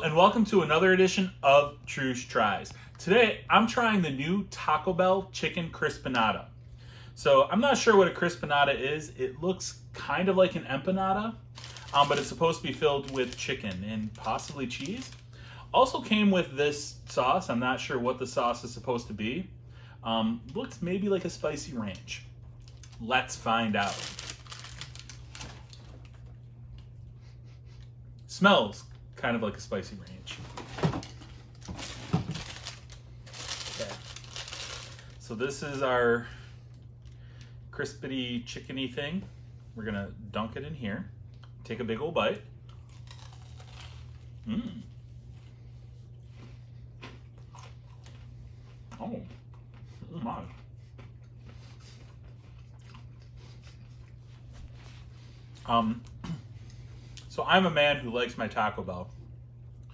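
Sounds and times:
steady low hum: 0:00.0 - 0:59.9
paper sleeve rustling and crinkling: 0:11.5 - 0:15.2, 0:23.7 - 0:26.0, 0:30.3 - 0:35.8
person chewing crunchy food: 0:42.6 - 0:57.3.

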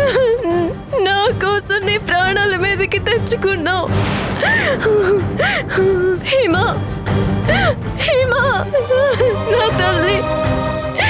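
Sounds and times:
woman crying and wailing: 0:00.0 - 0:01.4, 0:04.4 - 0:10.3.

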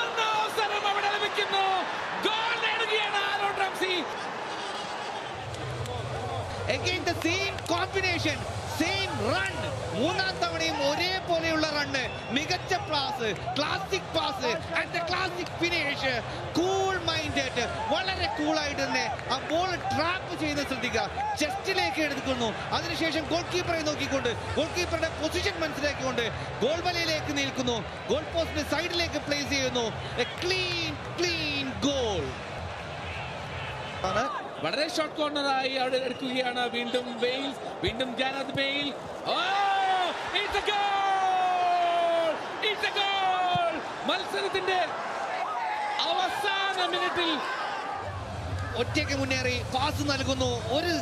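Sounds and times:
male commentator speaking: 0:00.0 - 0:04.2, 0:05.9 - 0:32.4, 0:34.0 - 0:45.1, 0:45.9 - 0:47.6, 0:48.7 - 0:51.0
stadium crowd noise: 0:00.0 - 0:51.0.

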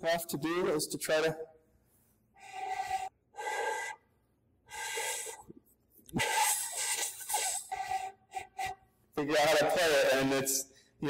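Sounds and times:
breathy pipe flute blowing: 0:02.4 - 0:04.1, 0:04.7 - 0:05.5, 0:06.2 - 0:08.8.

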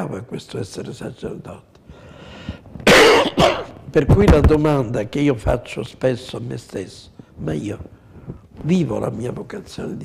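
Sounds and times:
man coughing: 0:02.8 - 0:03.8
man speaking: 0:03.4 - 0:07.9.

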